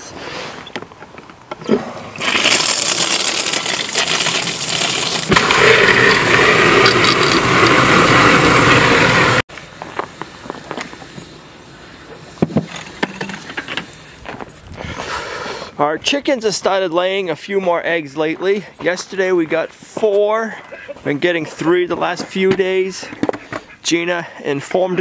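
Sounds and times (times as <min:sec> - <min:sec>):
water running into plastic jug: 0:01.6 - 0:06.2.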